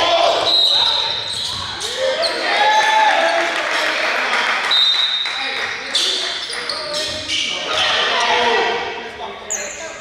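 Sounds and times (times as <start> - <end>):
voices echoing in hall: 0.0 - 10.0.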